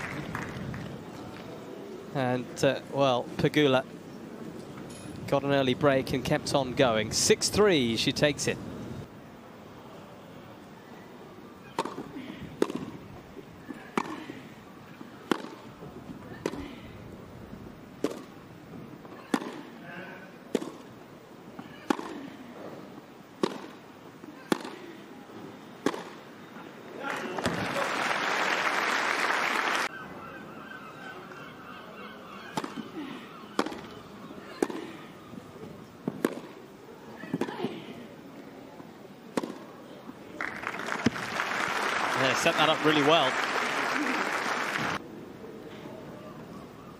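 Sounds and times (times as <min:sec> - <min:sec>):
applause: 0:00.0 - 0:01.5, 0:27.1 - 0:29.9, 0:40.4 - 0:45.0
racquets striking tennis ball: 0:11.6 - 0:13.0, 0:15.2 - 0:15.8, 0:18.0 - 0:18.4, 0:19.1 - 0:19.8, 0:20.5 - 0:21.0, 0:21.6 - 0:22.3, 0:23.4 - 0:25.0, 0:25.8 - 0:26.2, 0:32.5 - 0:35.0, 0:36.0 - 0:36.7, 0:39.3 - 0:39.7.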